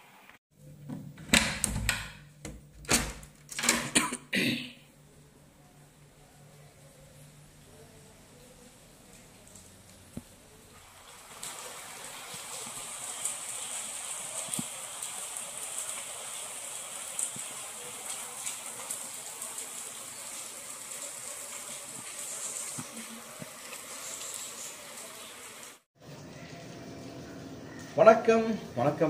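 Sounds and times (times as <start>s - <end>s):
steady rain falling: 5.1s - 28.7s.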